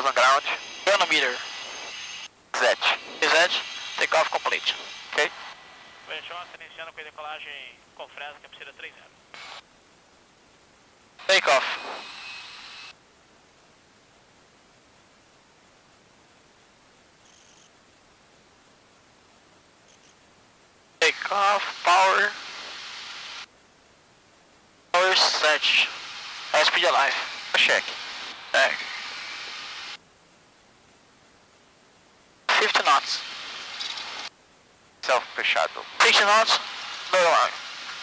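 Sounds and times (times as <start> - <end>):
man's voice over radio: 0.0 - 1.5, 2.6 - 5.4, 6.1 - 9.2, 11.2 - 12.0, 21.0 - 22.5, 25.0 - 28.8, 32.5 - 33.2, 35.0 - 37.6
radio hiss: 0.0 - 9.7, 11.2 - 13.0, 21.0 - 23.5, 24.9 - 30.0, 32.4 - 34.3, 35.0 - 38.0.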